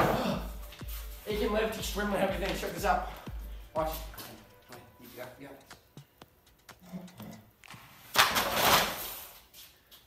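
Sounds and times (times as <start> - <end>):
papers sliding and falling to floor: 7.8 - 9.5.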